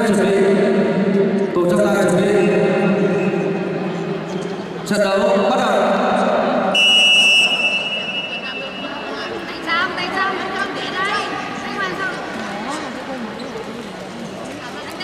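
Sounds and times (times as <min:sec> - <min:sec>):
voices in a hall: 0:00.0 - 0:15.0
referee's whistle blast: 0:06.8 - 0:09.0.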